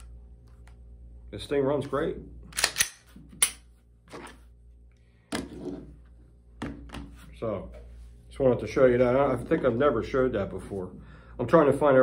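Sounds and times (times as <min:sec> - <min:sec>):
pistol mechanism clicks: 0:02.5 - 0:03.7.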